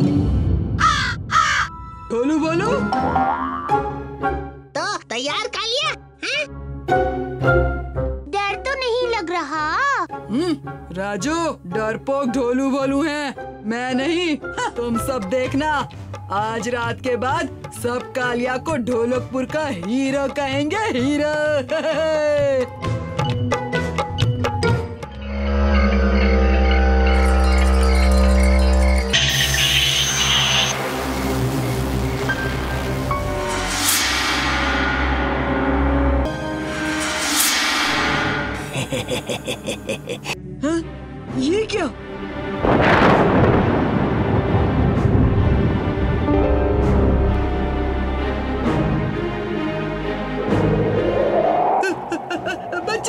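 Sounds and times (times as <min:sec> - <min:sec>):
cartoon background music: 0:00.0 - 0:34.0
boy speaking: 0:04.8 - 0:06.5, 0:08.2 - 0:10.5
sustained low drone: 0:25.2 - 0:39.6, 0:46.3 - 0:53.0
comic descending sound effect: 0:50.0 - 0:53.0.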